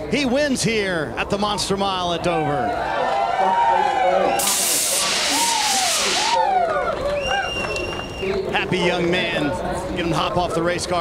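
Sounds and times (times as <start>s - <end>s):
people shouting and cheering: 2.1s - 11.0s
pressurized spray hissing: 4.4s - 6.4s.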